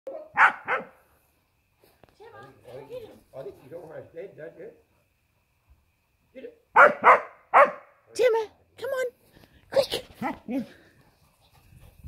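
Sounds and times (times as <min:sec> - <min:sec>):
dog barking: 0:00.1 - 0:01.0, 0:06.8 - 0:08.0.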